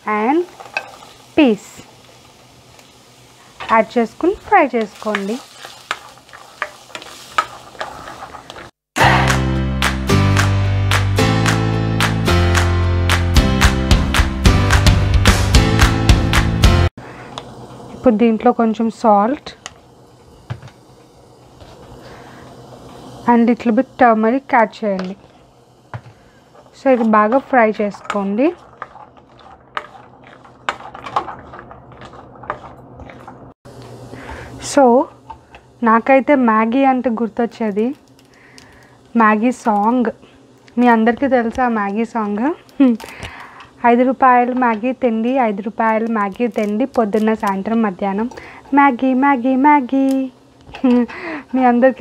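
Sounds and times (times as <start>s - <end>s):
vegetables sizzling in oil: 0.0s - 9.2s, 17.1s - 52.0s
spatula scraping metal pan: 5.0s - 8.7s, 26.6s - 33.5s.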